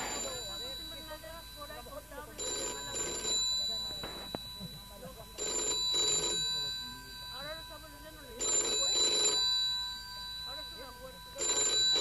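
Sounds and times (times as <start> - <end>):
phone ringtone bell: 0.0 - 12.0.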